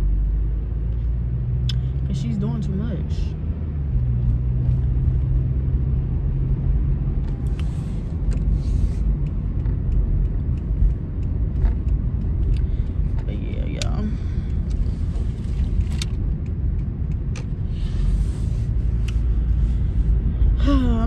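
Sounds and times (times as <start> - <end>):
engine and road rumble: 0.0 - 21.0
person speaking: 2.0 - 3.4, 13.2 - 14.3.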